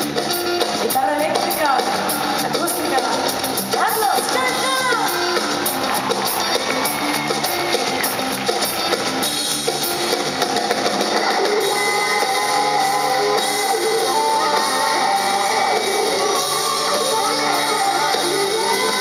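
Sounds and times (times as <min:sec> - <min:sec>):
live rock band: 0:00.0 - 0:19.0.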